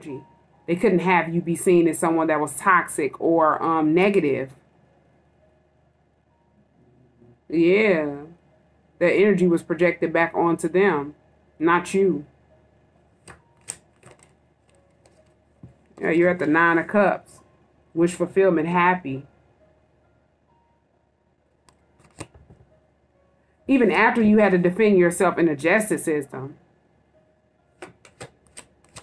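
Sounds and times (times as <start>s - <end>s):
cards being shuffled: 13.2s - 15.4s, 21.8s - 22.6s, 27.8s - 29.0s.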